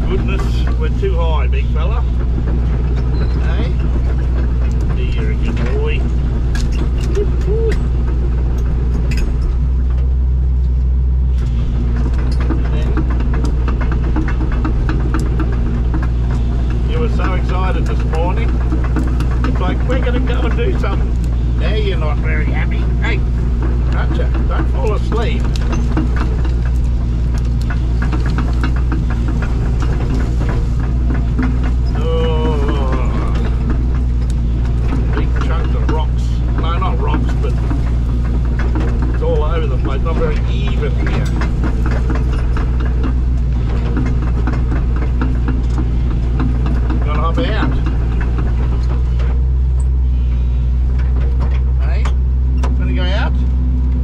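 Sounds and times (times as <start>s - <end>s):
excavator engine and hydraulics: 0.0s - 54.0s.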